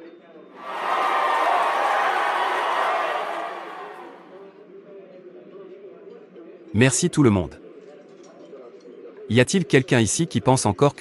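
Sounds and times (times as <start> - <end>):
crowd applause: 0.6 - 4.4.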